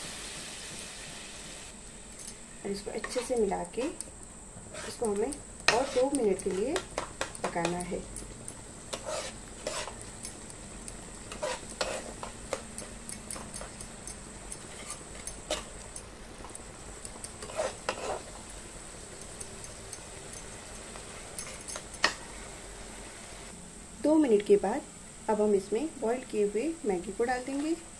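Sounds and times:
masala sizzling faintly: 0.0s - 27.9s
spatula scraping a pan: 3.0s - 4.0s, 4.7s - 7.3s, 8.9s - 10.1s, 11.2s - 13.0s, 14.6s - 15.8s, 17.4s - 18.4s
spatula tapping: 4.8s - 18.3s.

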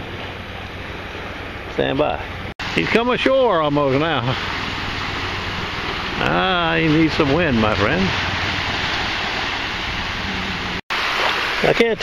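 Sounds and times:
wind: 0.0s - 12.0s
small waves breaking on a beach: 2.6s - 12.0s.

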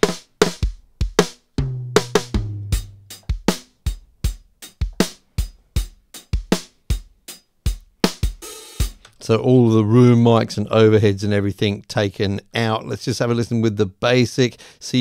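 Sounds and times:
acoustic drum kit beat: 0.0s - 9.2s.

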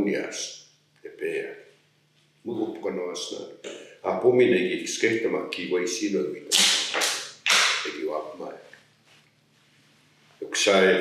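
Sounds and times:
man speaking: 2.5s - 7.0s, 7.8s - 8.7s, 10.4s - 11.0s.

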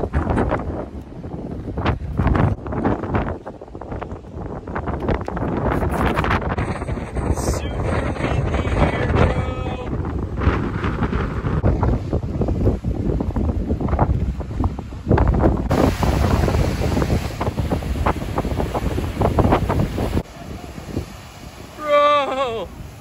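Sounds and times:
strong wind buffeting microphone: 0.0s - 23.0s
waves breaking on rock: 8.8s - 23.0s.

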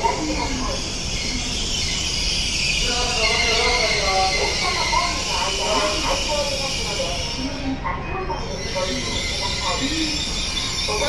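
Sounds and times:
train hiss and hum: 0.0s - 11.0s.

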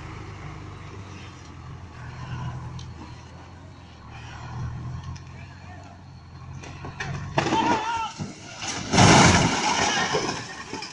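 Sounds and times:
diesel truck engine running: 0.0s - 8.9s.

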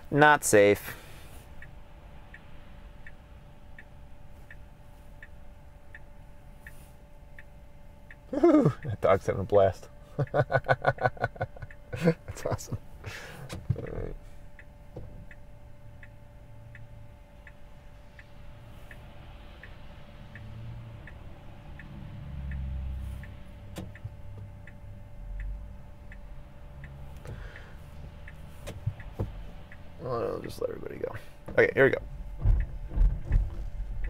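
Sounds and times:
turn signal ticking: 0.0s - 34.0s
low cabin rumble: 22.9s - 34.0s.

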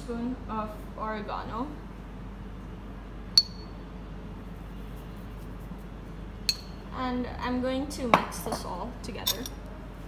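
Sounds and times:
faint room hum: 0.0s - 10.0s
metal spoon clink: 9.2s - 9.6s.

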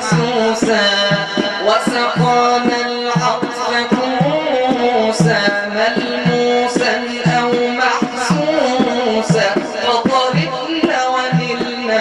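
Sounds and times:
frame drum beating: 0.0s - 12.0s
man singing ornamented line: 0.0s - 12.0s.

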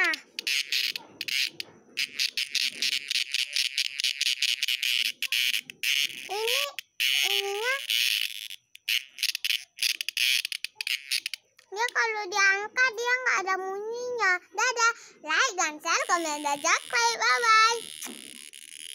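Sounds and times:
child's voice: 0.0s - 0.2s, 6.2s - 7.9s, 11.7s - 17.9s
insect pulsing buzz: 0.0s - 11.7s, 15.9s - 18.9s.

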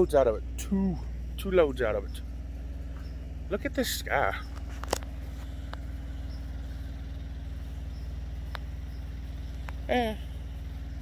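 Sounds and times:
small diesel engine running: 0.0s - 11.0s.

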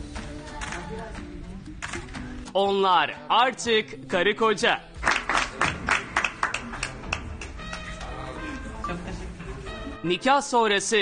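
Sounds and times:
background music: 0.0s - 11.0s
people clapping: 5.0s - 8.5s.

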